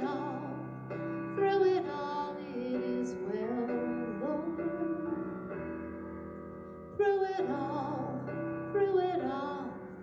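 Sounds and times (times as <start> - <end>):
woman singing worship song: 0.0 - 0.8
piano accompaniment: 0.0 - 10.0.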